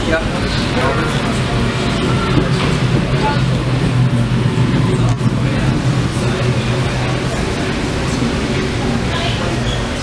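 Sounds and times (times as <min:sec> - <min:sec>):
ferry engines humming: 0:00.0 - 0:10.0
passenger voices: 0:00.0 - 0:10.0.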